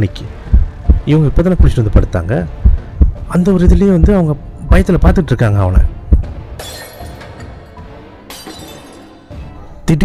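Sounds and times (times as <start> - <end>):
glass shattering: 6.6 - 9.3.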